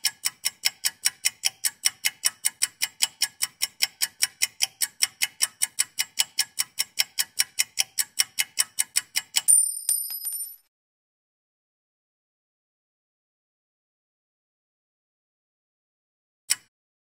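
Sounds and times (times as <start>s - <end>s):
clock ticking fast: 0.0s - 9.6s.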